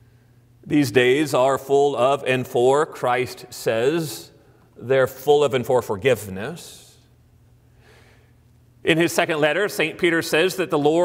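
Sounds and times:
man talking: 0.6 - 7.1, 8.8 - 11.0
faint breath: 7.6 - 8.4.

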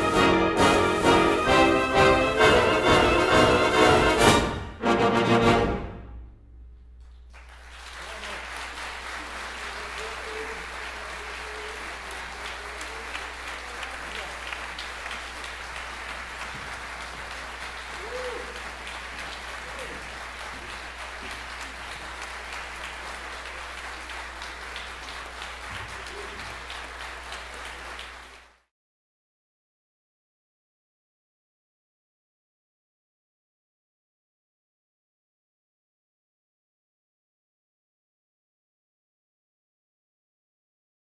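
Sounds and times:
audience applauding: 7.0 - 28.7.

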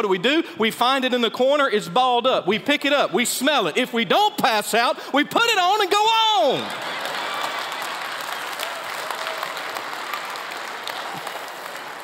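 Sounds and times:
congregation applauding: 6.2 - 12.0.

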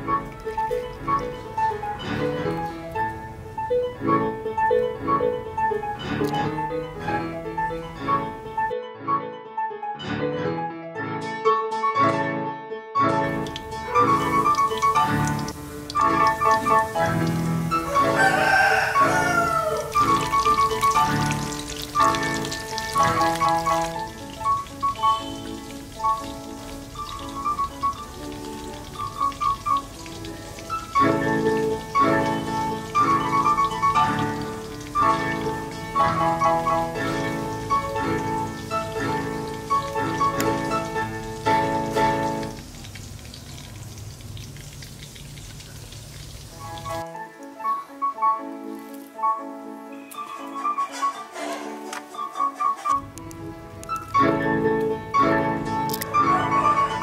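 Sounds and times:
oil sizzling and crackling: 0.0 - 4.8, 13.3 - 57.0
background music: 0.0 - 42.7, 46.6 - 57.0
rooster crowing: 17.7 - 20.6.

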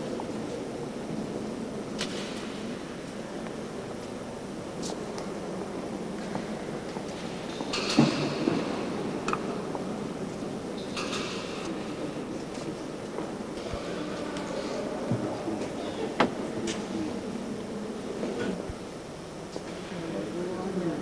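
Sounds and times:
echoing hall ambience: 0.0 - 21.0.

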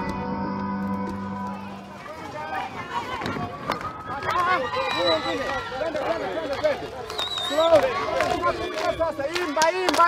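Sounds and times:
music: 0.0 - 1.8.

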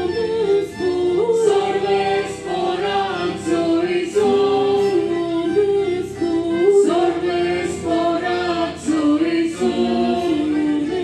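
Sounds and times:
choir singing a slow hymn: 0.0 - 11.0.

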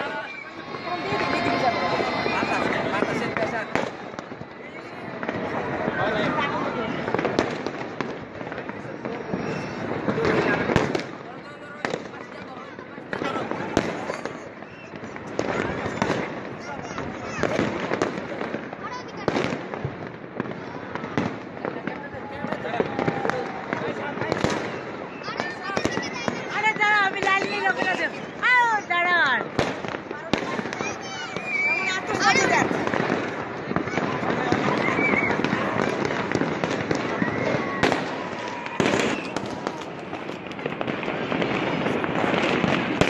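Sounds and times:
fireworks bangs and cracks: 0.0 - 43.0.

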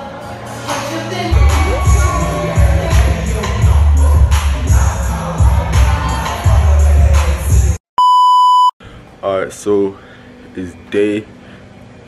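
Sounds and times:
electronic beep: 8.0 - 8.7.

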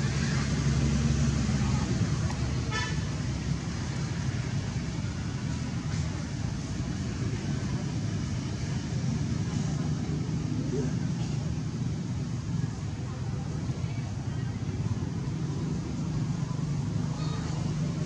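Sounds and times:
engine rumbling: 0.0 - 18.0.

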